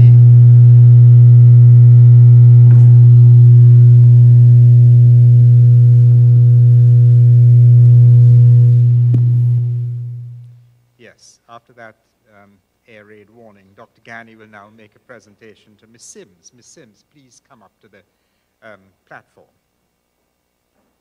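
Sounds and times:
loud low mains hum: 0:00.0 - 0:21.0.

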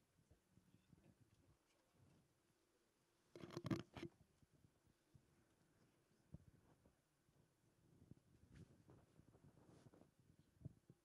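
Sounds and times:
microphone being handled: 0:03.4 - 0:04.2, 0:08.5 - 0:10.8.

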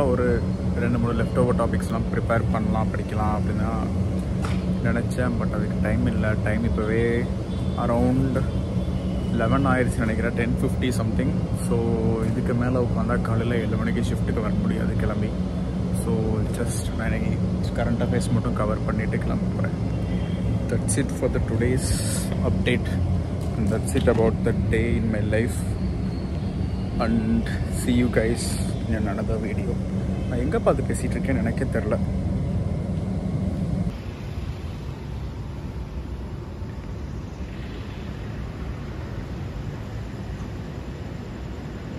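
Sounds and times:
man talking: 0:00.0 - 0:04.0, 0:04.8 - 0:08.5, 0:09.3 - 0:19.8, 0:20.6 - 0:25.8, 0:27.0 - 0:32.2
low background rumble: 0:00.0 - 0:41.9
low mechanical hum: 0:00.0 - 0:41.9.

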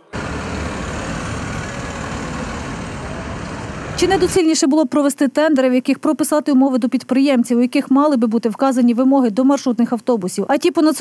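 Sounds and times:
bus engine running: 0:00.0 - 0:04.5
street noise: 0:00.0 - 0:04.7.

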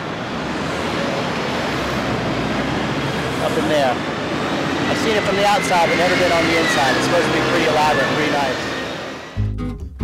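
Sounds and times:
busy city street traffic: 0:00.0 - 0:09.4.

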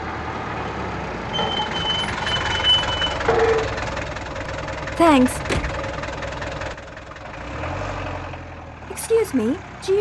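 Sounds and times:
car engine and road rumble: 0:00.0 - 0:10.0
high beeping tone: 0:01.3 - 0:03.7.

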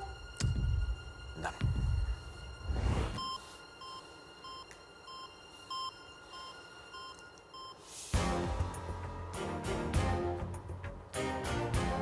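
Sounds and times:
heart monitor beeps: 0:03.2 - 0:07.8.

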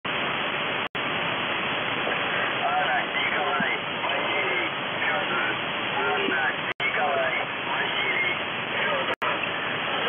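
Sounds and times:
radio static hiss: 0:00.1 - 0:10.0.

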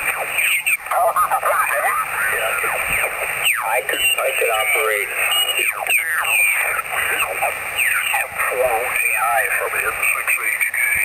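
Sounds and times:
garbled radio voices: 0:00.0 - 0:11.0.

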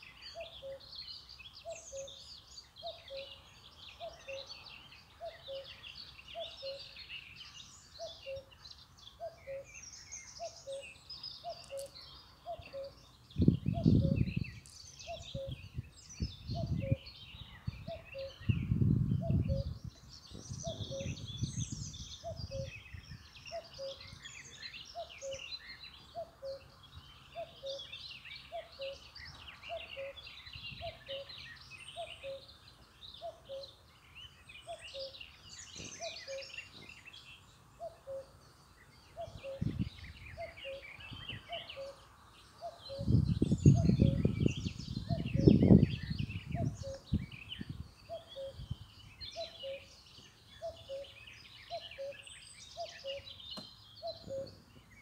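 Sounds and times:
small birds chirping: 0:00.0 - 0:55.0.

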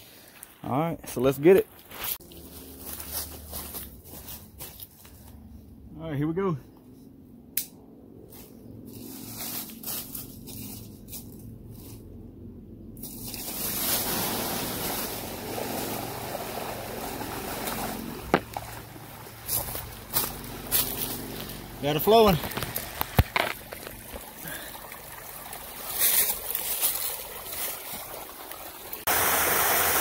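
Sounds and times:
water gushing from pipe: 0:13.1 - 0:30.0.

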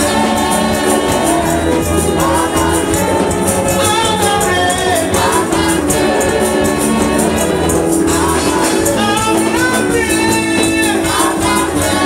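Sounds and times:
high percussive beat: 0:00.0 - 0:12.0
small choir singing: 0:00.0 - 0:12.0
woman and man singing: 0:00.0 - 0:12.0.

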